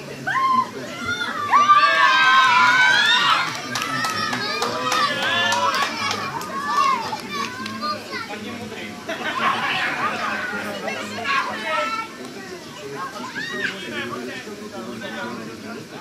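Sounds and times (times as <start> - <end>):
children shouting excitedly: 0.2 - 8.5, 9.3 - 12.2, 12.8 - 13.9.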